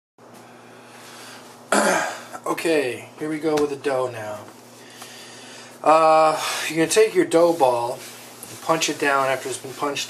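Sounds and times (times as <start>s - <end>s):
faint room hum: 0.2s - 10.0s
man coughing: 1.7s - 2.4s.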